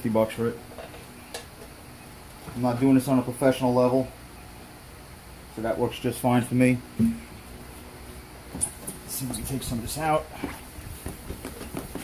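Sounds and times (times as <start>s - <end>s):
man speaking: 9.1s - 10.6s.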